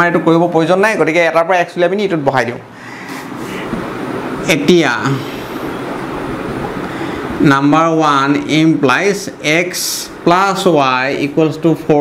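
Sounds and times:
constant hiss: 0.0s - 12.0s.

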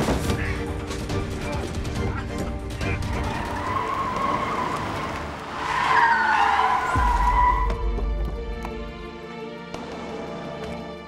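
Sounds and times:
car tyres squealing on asphalt: 3.1s - 7.8s.

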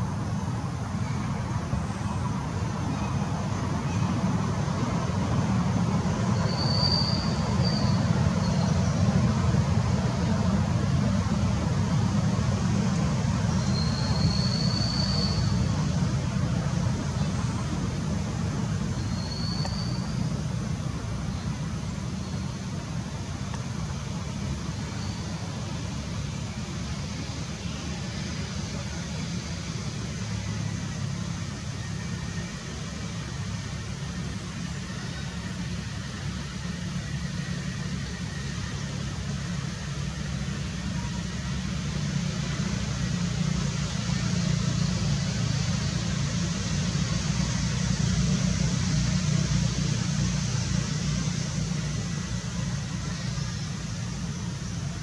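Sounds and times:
even hiss: 0.0s - 55.0s.

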